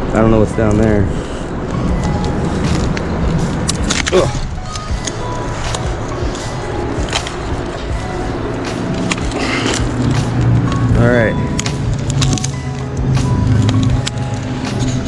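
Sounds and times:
dry sticks snapping underfoot: 1.6s - 7.8s, 8.6s - 15.0s.

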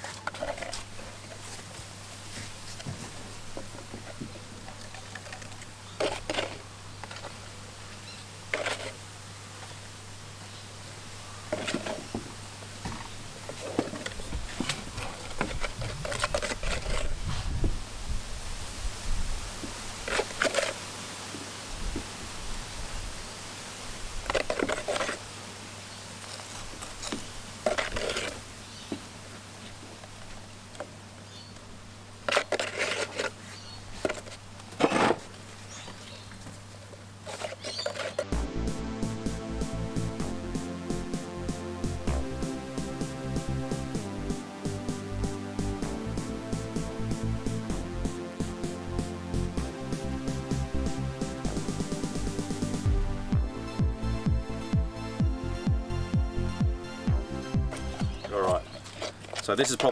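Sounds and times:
utensil scraping in plastic tub: 4.0s - 7.4s, 8.5s - 9.0s, 13.5s - 17.4s, 20.0s - 20.8s, 24.3s - 25.2s, 26.2s - 28.4s, 32.3s - 35.3s, 37.2s - 38.3s
steady low hum: 38.2s - 59.0s.

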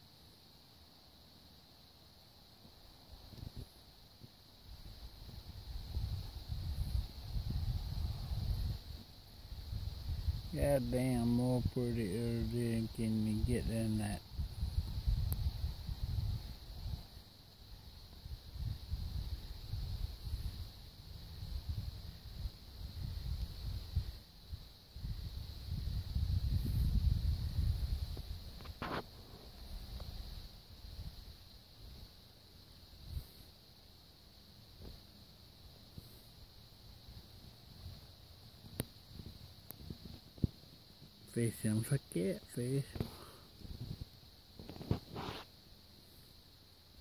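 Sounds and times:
high chorus of insects: 0.0s - 47.0s
wind gusting over microphone: 5.2s - 17.2s, 18.2s - 29.1s, 42.9s - 45.4s.

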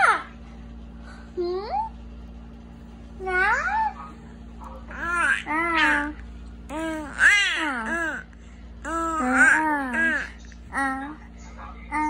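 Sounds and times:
faint steady hum: 0.0s - 12.0s
baby cooing: 4.9s - 11.2s.

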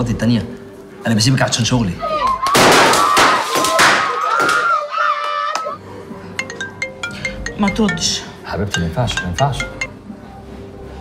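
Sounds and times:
loud burst of sharp cracks: 2.5s - 4.6s.

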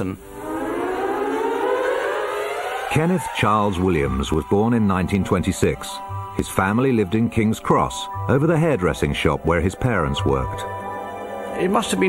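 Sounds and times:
siren-like wail rising in pitch: 0.3s - 6.8s.

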